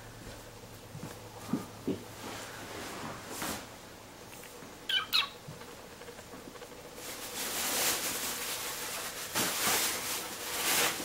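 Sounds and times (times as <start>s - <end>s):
kitten mewing: 4.9s - 5.4s.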